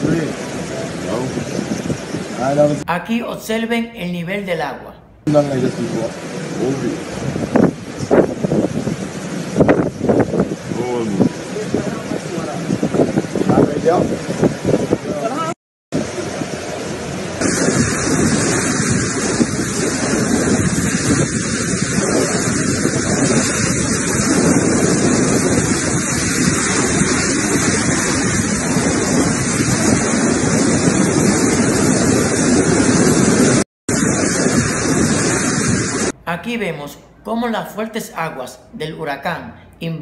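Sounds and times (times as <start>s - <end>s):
strong wind blowing: 0.0s - 4.0s, 5.2s - 36.2s.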